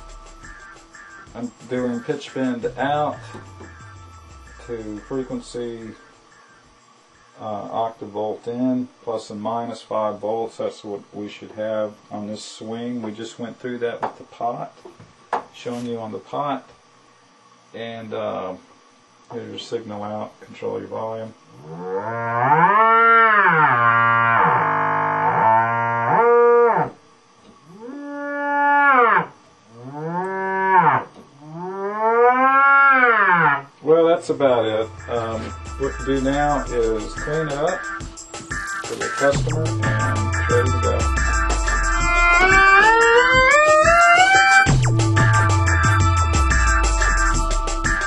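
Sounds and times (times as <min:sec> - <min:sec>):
synthesizer note with pitch bend: 0:00.0 - 0:06.2, 0:34.4 - 0:48.0.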